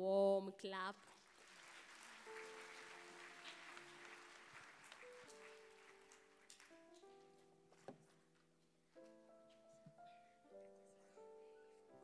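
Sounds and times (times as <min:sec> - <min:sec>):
congregation applause: 0:01.0 - 0:07.1.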